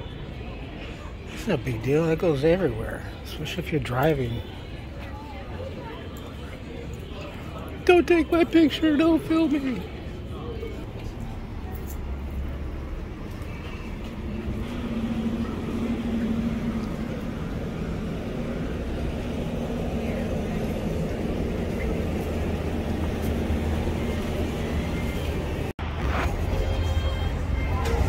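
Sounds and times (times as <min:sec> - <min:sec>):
engine low hum: 0:00.0 - 0:28.0
street traffic rumble: 0:00.0 - 0:28.0.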